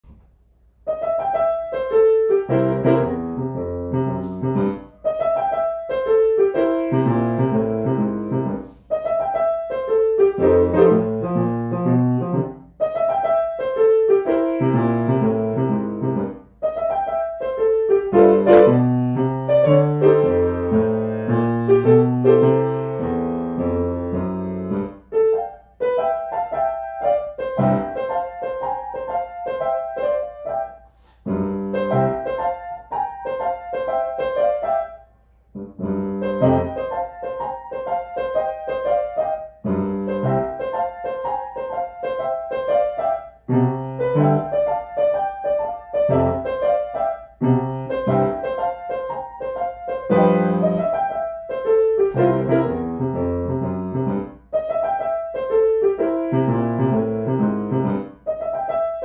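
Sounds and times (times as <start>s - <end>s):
grand piano playing solo: 0.0s - 59.0s.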